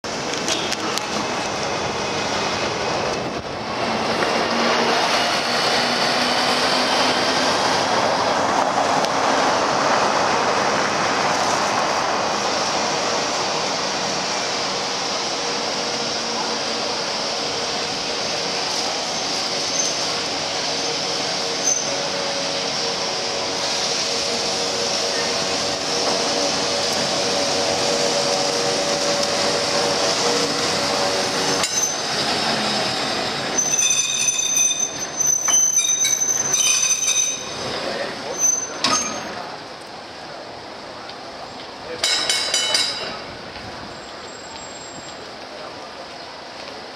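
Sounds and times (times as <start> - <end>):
street traffic: 0.0 - 46.9
tram wheels squealing on rails: 0.1 - 39.6, 41.4 - 46.9.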